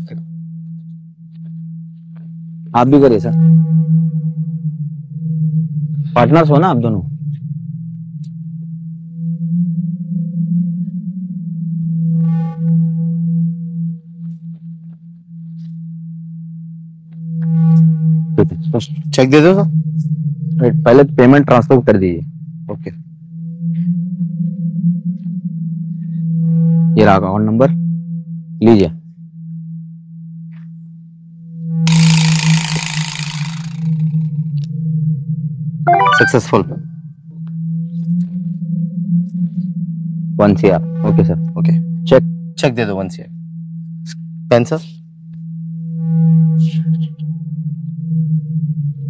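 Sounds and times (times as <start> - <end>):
low synthesised drone: 0.0 - 18.4
faint high tone: 35.9 - 36.9
short ringing chord: 35.9 - 36.9.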